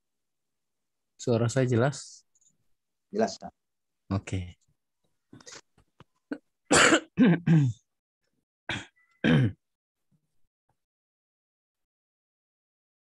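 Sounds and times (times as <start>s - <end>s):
person clearing throat: 6.3s - 7.8s, 8.7s - 9.6s
person coughing: 6.3s - 7.8s, 8.7s - 9.6s.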